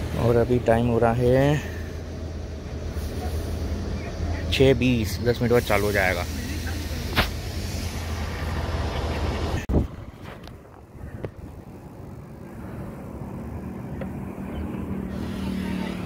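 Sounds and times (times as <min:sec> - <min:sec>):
bicycle tyre road noise: 0:00.0 - 0:16.0
wind over microphone: 0:09.2 - 0:13.7.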